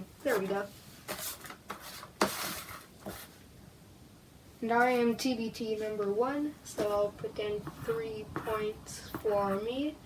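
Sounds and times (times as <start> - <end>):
paper rustling: 0.3 - 3.4.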